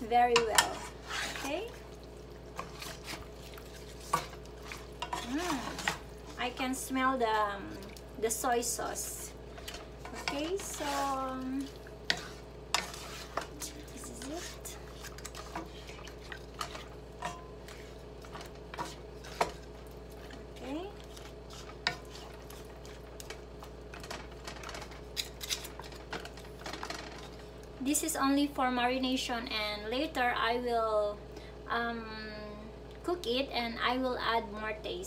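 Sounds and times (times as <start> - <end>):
wooden spatulas stirring in a pan: 0.0 - 27.6.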